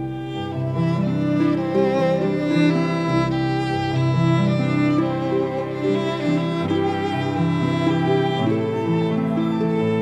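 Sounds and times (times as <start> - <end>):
violin and cello bowed notes: 0.0 - 10.0.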